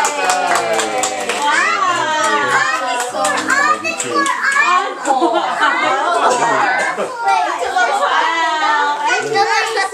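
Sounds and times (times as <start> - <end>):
young children chattering: 0.0 - 9.9.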